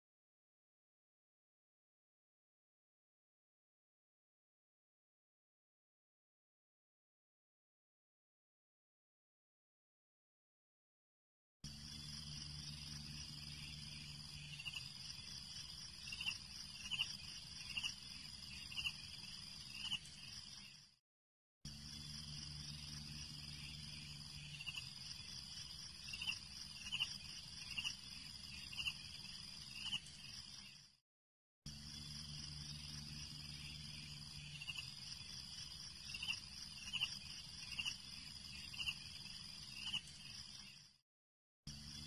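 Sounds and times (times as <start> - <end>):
low hum: 11.7 - 18.8, 21.7 - 26.2
insect-like trill: 11.7 - 21.0, 21.7 - 31.0, 31.7 - 41.0.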